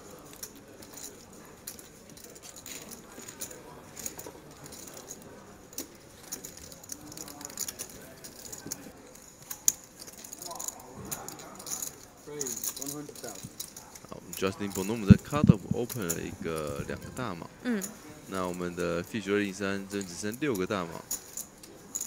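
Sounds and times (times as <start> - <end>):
faint table murmur: 0.0 - 22.0
poker chips clicking and clacking: 12.4 - 17.5.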